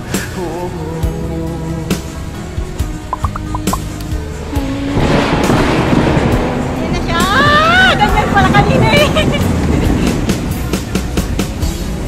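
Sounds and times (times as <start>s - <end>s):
roller coaster rumbling on track: 4.6s - 12.0s.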